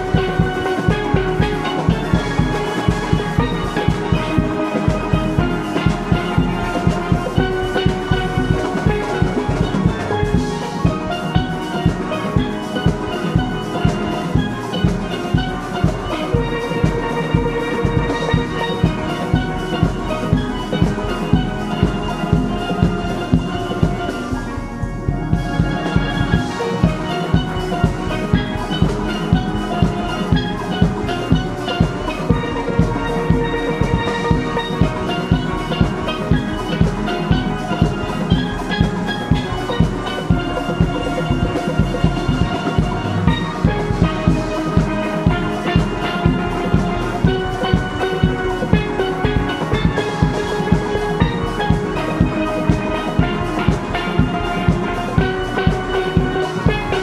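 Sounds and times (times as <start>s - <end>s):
drum kit steady beat: 0.0s - 57.0s
steelpans playing a tune: 0.0s - 57.0s.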